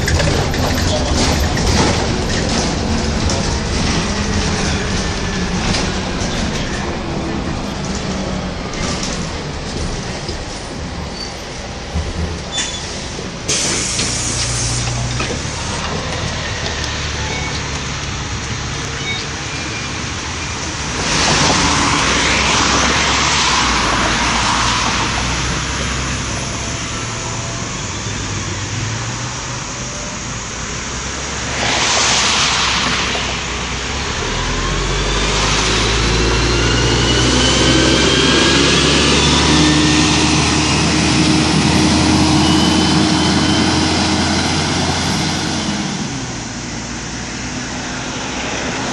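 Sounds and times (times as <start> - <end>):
bus engine revving: 0.0 - 48.9
bus air brake hiss: 12.6 - 15.0.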